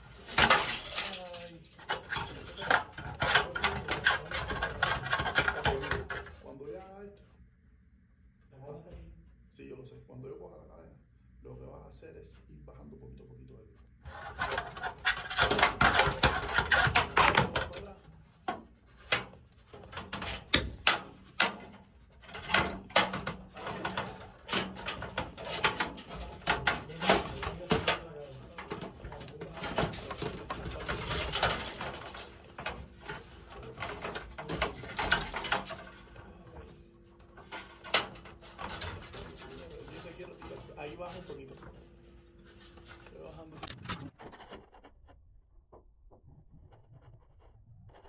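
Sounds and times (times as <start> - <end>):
knocks and scrapes on metal grid: 0.0 - 6.5, 14.0 - 44.9.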